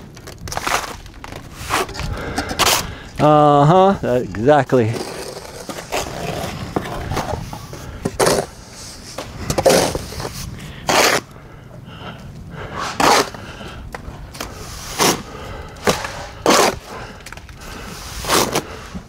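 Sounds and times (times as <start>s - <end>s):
steel trowels scraping stucco: 4.7s - 11.3s, 12.7s - 13.4s, 14.5s - 17.1s, 17.8s - 19.0s.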